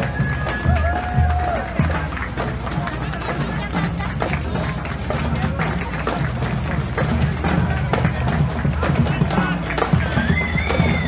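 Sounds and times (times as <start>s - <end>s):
crowd voices and chatter: 0.0s - 11.0s
parade music: 0.0s - 11.0s.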